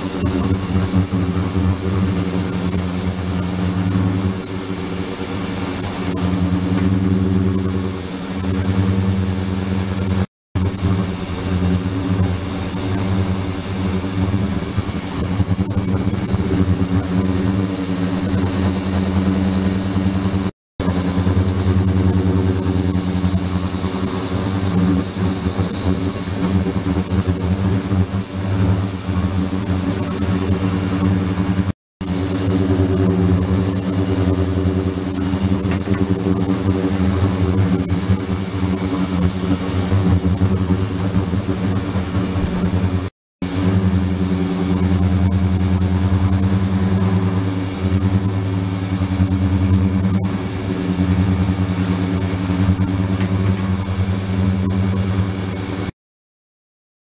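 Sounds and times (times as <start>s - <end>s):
cleaning tank hum: 0.0s - 55.8s.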